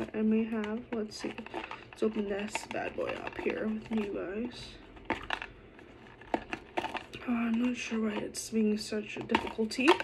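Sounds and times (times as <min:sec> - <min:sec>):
jewelry box lid clicks and scrapes: 0:00.0 - 0:08.4, 0:09.0 - 0:10.0.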